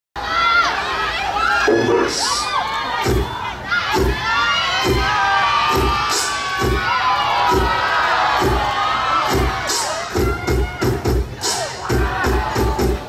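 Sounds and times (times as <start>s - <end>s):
audience cheering and screaming: 0.2s - 13.0s
dance music with heavy drum beat: 3.0s - 13.0s.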